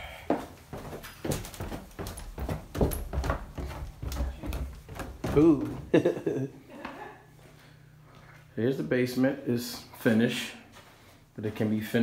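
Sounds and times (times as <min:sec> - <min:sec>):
footsteps going down stairs: 0:00.0 - 0:08.6.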